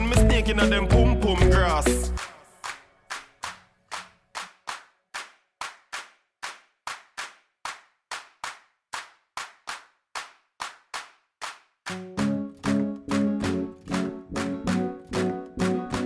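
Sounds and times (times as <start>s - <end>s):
dancehall riddim: 0.0s - 3.6s, 11.9s - 16.0s
electronic clap hits: 0.1s - 16.0s.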